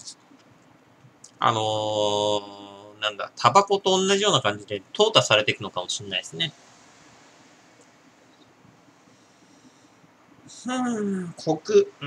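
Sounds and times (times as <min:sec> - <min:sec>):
man mumbling speech: 0:01.4 - 0:03.1.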